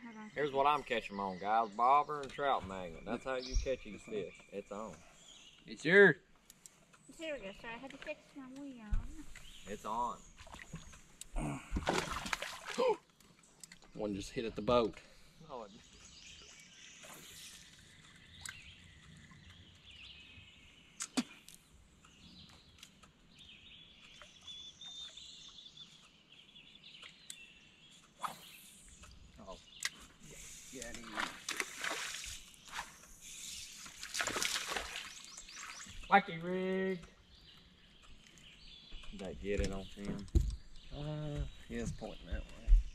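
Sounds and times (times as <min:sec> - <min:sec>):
faint bird chirping: 0:00.0 - 0:11.7, 0:13.3 - 0:42.9.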